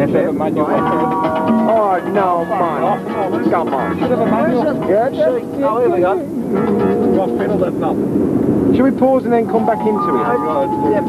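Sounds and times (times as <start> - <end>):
music from car radio: 0.7 - 5.0
person speaking: 0.7 - 7.8.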